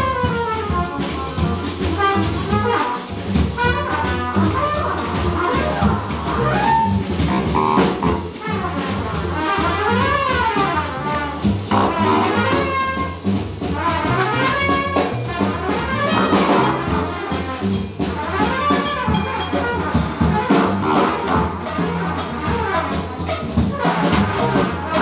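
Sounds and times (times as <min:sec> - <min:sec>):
drum kit: 0:00.0 - 0:25.0
upright bass: 0:01.0 - 0:09.2, 0:10.8 - 0:22.4
congas: 0:01.4 - 0:25.0
trumpet playing: 0:01.4 - 0:25.0.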